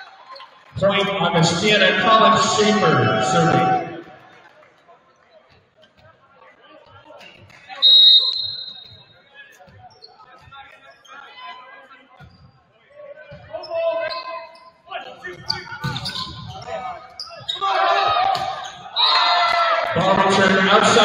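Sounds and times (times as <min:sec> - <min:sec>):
players shouting: 0:00.8 - 0:04.1, 0:17.5 - 0:21.0
spectators yelling and cheering: 0:00.9 - 0:04.1.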